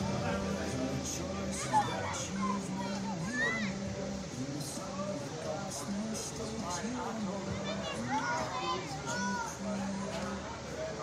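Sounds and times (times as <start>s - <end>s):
chatter of voices: 0.0s - 11.0s
children's voices: 0.0s - 11.0s.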